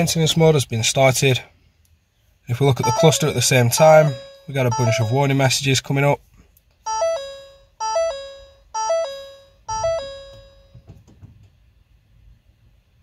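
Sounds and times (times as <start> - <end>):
falling three-note warning chime: 2.8 - 5.6, 6.9 - 10.8.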